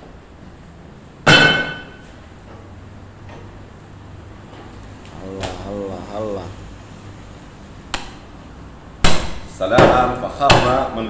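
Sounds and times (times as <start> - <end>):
sharp metallic clang: 1.2 - 2.2.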